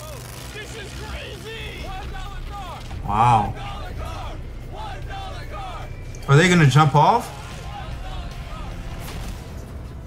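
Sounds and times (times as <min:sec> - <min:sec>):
background music: 0:00.2 - 0:10.0.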